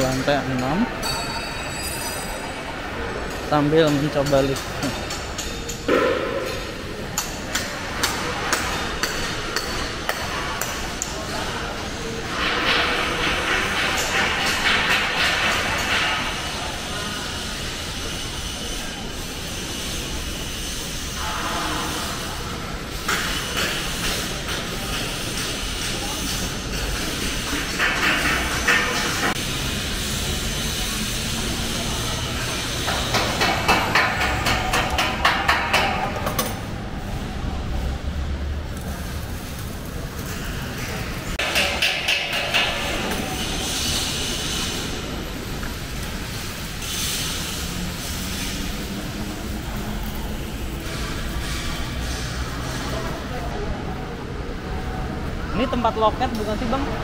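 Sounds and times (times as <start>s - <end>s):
indistinct voices of workers: 0.0s - 57.0s
dense noise: 11.2s - 25.0s.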